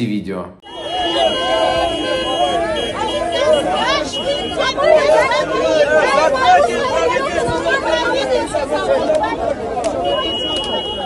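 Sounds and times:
crowd talking loudly: 0.6 - 11.0.

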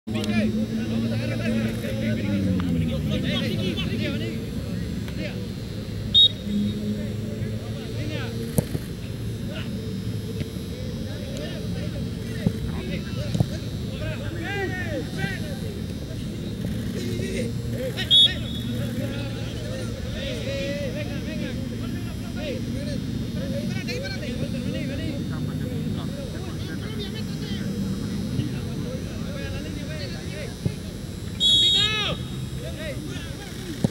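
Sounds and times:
steady background hum: 0.1 - 33.9
referee whistle blasts: 6.1 - 6.8, 18.1 - 18.8, 31.3 - 32.5
distant shouts of people: 31.4 - 33.2.

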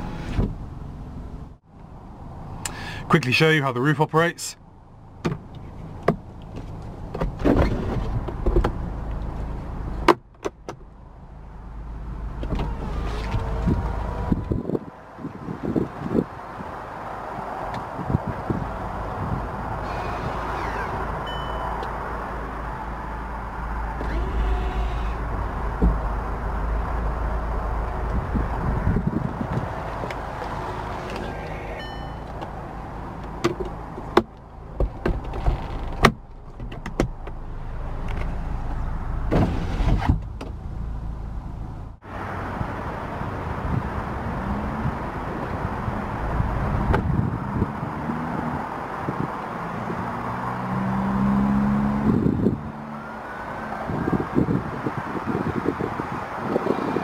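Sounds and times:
roof mechanism clicks and clunks: 23.9 - 26.1, 33.2 - 37.4.

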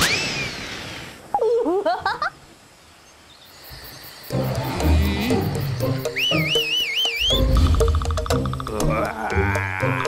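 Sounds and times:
high wavering whistle tone: 5.9 - 7.6
cartoon dinosaur roar: 8.7 - 10.0.

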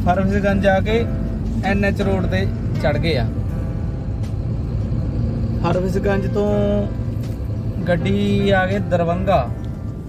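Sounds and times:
road noise: 0.0 - 10.0
truck engine drone: 0.0 - 10.0.

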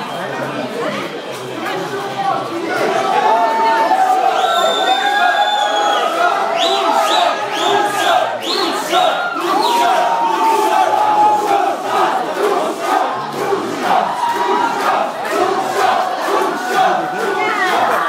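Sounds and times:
crowd of men chanting: 5.7 - 18.0.

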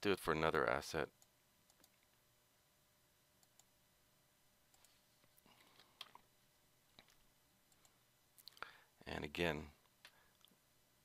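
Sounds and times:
computer mouse clicks: 1.2 - 2.2, 3.4 - 3.7, 4.7 - 5.0, 7.0 - 8.6.

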